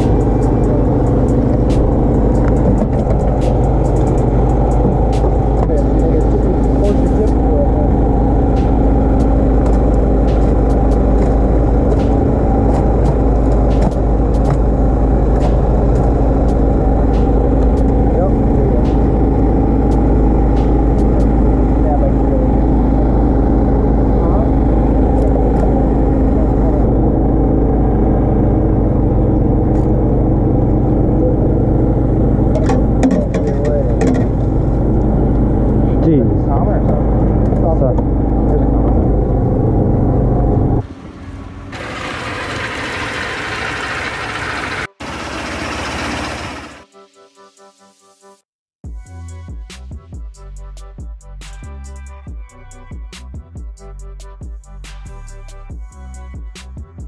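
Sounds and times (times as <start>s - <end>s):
boat engine humming: 0.0s - 46.9s.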